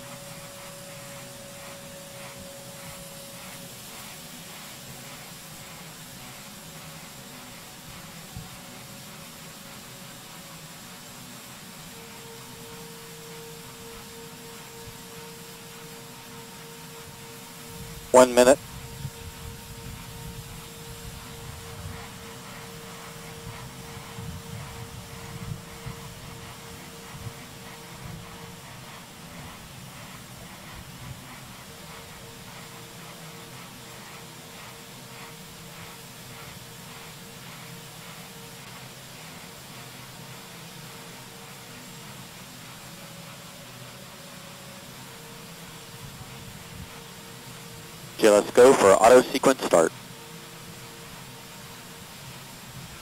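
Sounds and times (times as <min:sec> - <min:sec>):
steady hiss: 0:00.0 - 0:28.1, 0:28.8 - 0:50.8.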